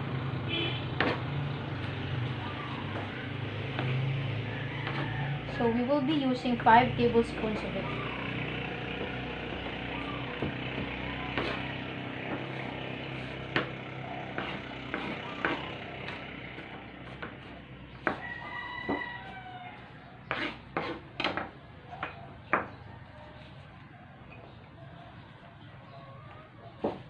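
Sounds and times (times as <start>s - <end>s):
knife chopping on plastic board: 1.0s - 1.3s, 2.9s - 4.0s, 4.8s - 5.1s, 9.0s - 19.1s, 20.3s - 22.8s, 26.8s - 27.0s.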